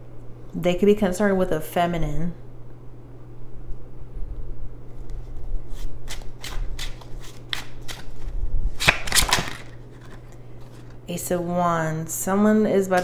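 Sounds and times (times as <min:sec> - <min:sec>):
cards being shuffled: 0:05.0 - 0:11.0.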